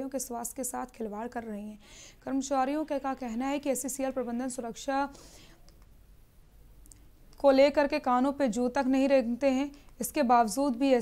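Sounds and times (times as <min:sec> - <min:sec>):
woman breathing in: 0:01.8 - 0:02.2, 0:05.1 - 0:05.6.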